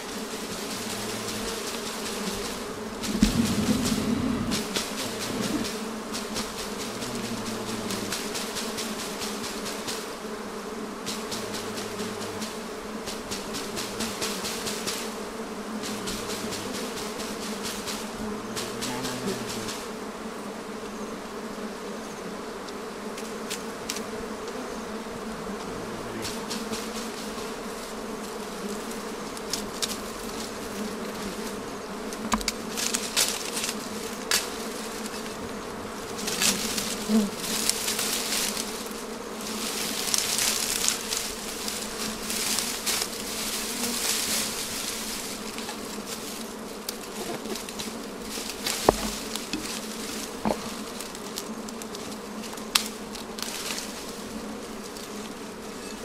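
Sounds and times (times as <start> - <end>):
bees buzzing: 0.0 - 56.0.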